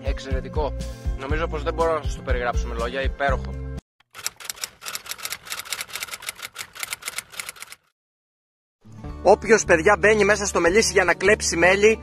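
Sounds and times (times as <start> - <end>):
typewriter key clacks: 4.2 - 7.8.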